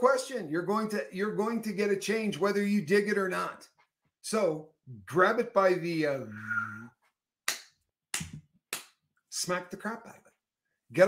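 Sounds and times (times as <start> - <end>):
sharp hand claps: 7.5 - 9.0.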